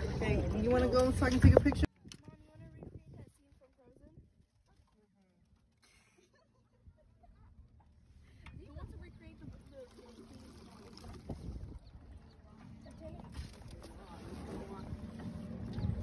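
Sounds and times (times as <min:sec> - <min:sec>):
voices: 0:00.0 - 0:16.0
faint laughter: 0:05.8 - 0:08.4
rowboat rumbling and knocking: 0:08.5 - 0:16.0.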